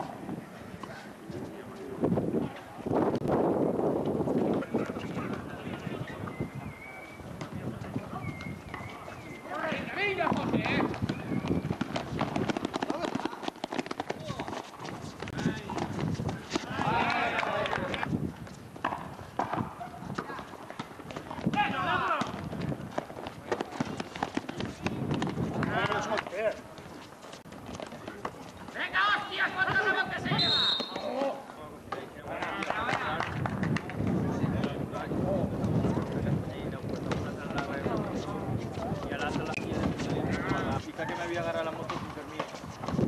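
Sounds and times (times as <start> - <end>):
players calling out: 28.0 - 31.5.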